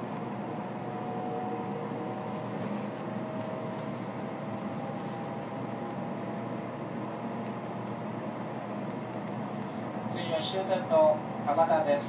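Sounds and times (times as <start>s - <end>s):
train interior rumble and hiss: 0.0s - 12.0s.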